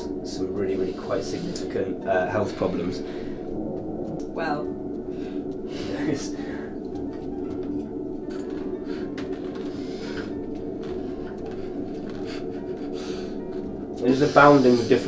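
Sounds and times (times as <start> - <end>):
low hum of held tones: 0.0 - 15.0.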